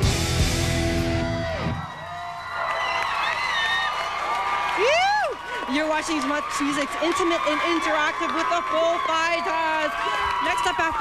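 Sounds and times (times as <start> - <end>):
rock band with electric guitars: 0.0 - 2.0
crowd cheering and whooping: 0.7 - 11.0.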